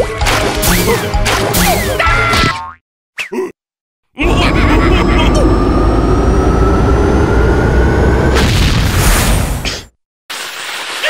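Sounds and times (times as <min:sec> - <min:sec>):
cartoon music: 0:00.0 - 0:02.3.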